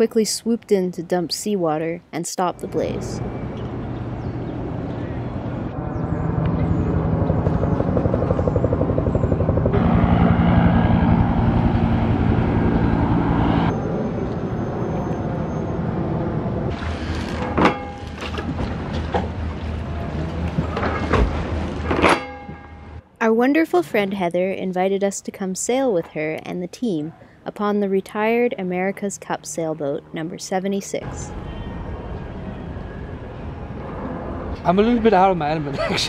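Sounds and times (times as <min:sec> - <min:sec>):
helicopter rotor chopping: 0:02.6 - 0:14.0.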